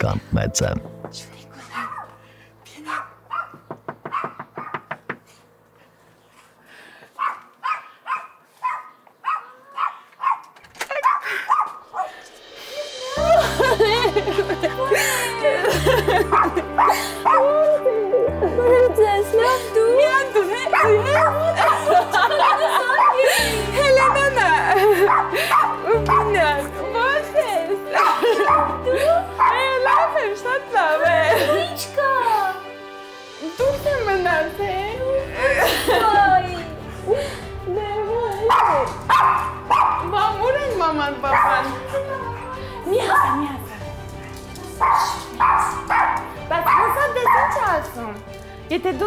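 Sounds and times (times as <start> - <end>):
background music low notes: 0.0 - 7.3, 11.0 - 49.0
dog barking: 1.7 - 2.2, 2.9 - 4.9, 7.2 - 12.1, 20.7 - 23.2, 25.1 - 26.4, 29.4 - 30.2, 38.5 - 40.2, 41.3 - 43.5, 44.8 - 47.8
knuckle knocks on a door: 3.5 - 5.2.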